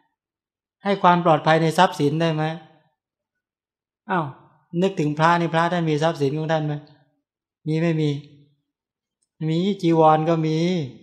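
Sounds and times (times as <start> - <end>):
man speaking: 0.9 - 2.6, 4.1 - 6.9, 7.7 - 8.3, 9.4 - 11.0.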